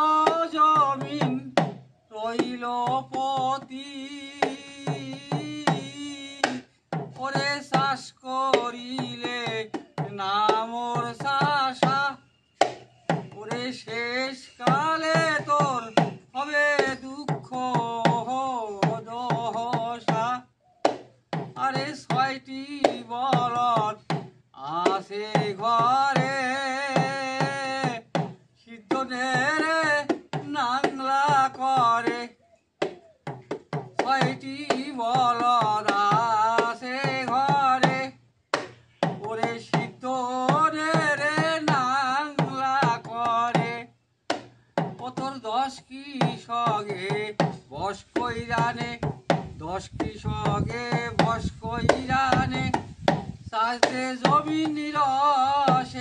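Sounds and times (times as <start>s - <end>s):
person singing folk song: 0.0s - 56.0s.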